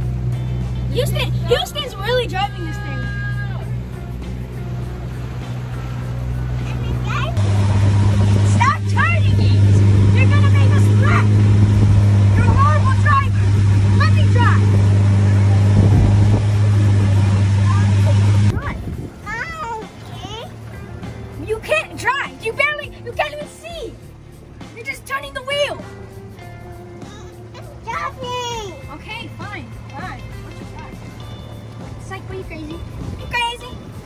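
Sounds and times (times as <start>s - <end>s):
motorboat engine droning: 0.0s - 24.8s
water rushing along hull: 0.0s - 25.9s.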